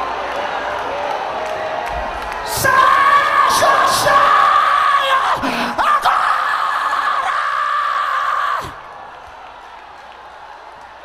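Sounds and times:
man screaming through speakers: 0:02.5 - 0:08.8.

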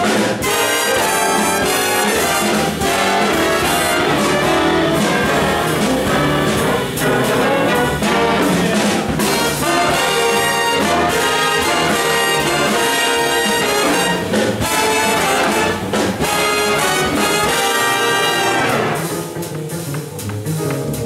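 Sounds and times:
big band playing swing: 0:00.0 - 0:21.0.

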